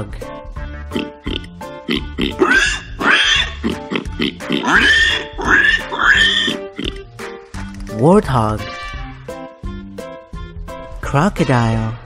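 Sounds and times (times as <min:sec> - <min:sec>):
upbeat children's music: 0:00.0 - 0:12.0
warthog grunting and squealing: 0:01.0 - 0:07.0.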